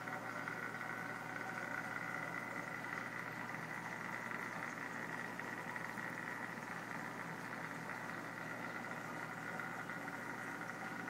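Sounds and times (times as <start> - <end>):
aquarium pumps humming: 0.0 - 11.0
faint constant whine: 0.0 - 11.0.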